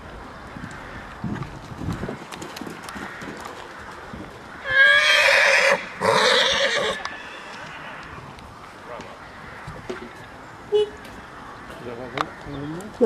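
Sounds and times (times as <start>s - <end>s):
horse whinnying: 4.6s - 8.2s.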